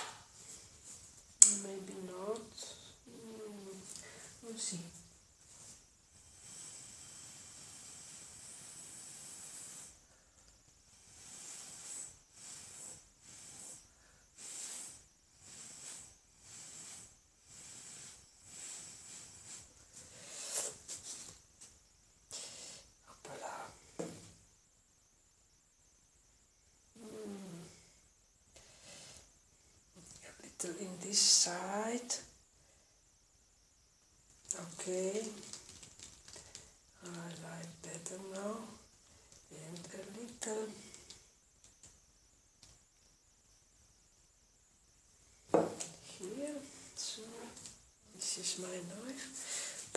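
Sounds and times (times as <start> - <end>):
airy hiss through a straw: 0.0 - 1.7, 2.5 - 21.4, 22.2 - 24.4, 28.6 - 29.4, 37.9 - 41.3, 45.3 - 49.9.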